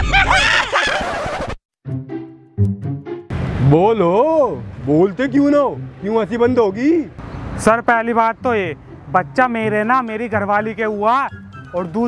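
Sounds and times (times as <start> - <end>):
men laughing hard: 0.0 - 1.6.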